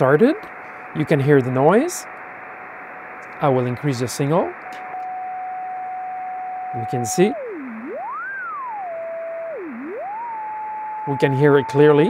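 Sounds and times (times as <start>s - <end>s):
receiver noise hiss: 0.0s - 12.0s.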